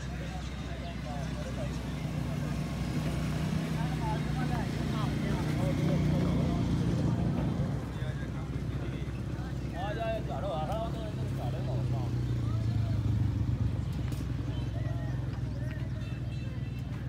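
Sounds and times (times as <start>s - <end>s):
distant voices and chatter: 0.0s - 17.0s.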